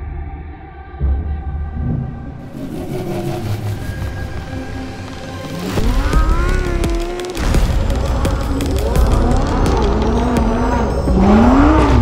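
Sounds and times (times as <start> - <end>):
car engine running: 4.0 - 12.0.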